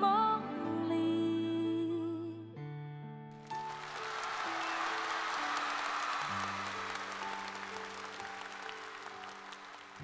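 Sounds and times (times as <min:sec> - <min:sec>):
soft instrumental accompaniment: 0:00.0 - 0:10.0
audience applauding: 0:03.4 - 0:10.0.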